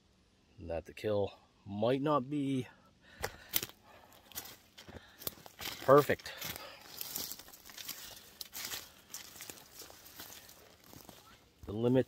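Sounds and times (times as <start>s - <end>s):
footsteps on dry leaf litter: 3.3s - 12.0s.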